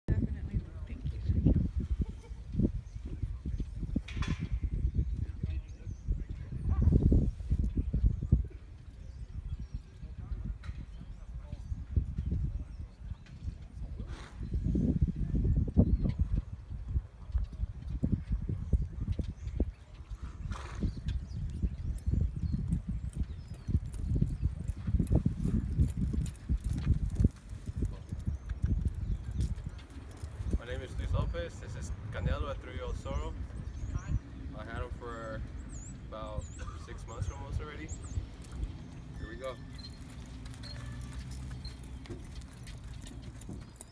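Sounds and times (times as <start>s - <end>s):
hoofbeats on sandy dirt: 0.8s - 31.4s, 35.4s - 43.9s.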